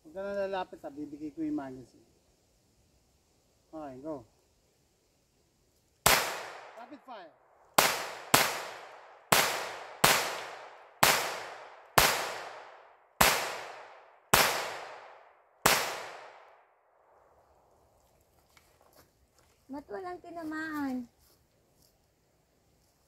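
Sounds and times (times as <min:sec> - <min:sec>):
pistol shots with echo: 0:06.0 - 0:06.9, 0:07.8 - 0:16.6.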